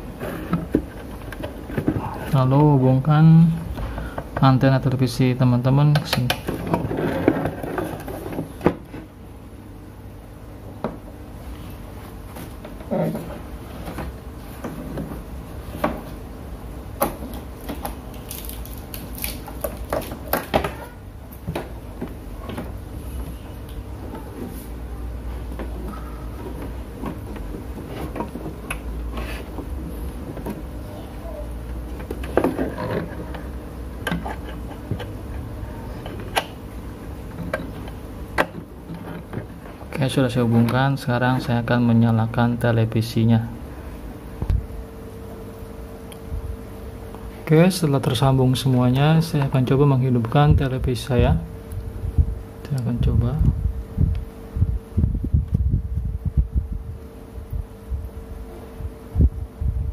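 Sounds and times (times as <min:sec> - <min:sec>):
low steady hum: 0:00.0 - 0:59.9.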